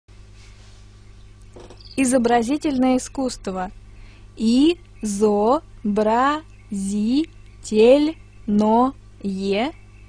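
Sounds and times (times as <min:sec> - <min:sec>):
low hum with faint hiss: 0:00.1 - 0:10.0.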